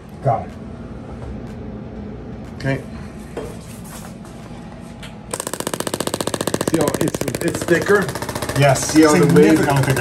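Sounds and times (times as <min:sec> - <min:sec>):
rapid machine-gun clicking: 0:05.3 - 0:10.0.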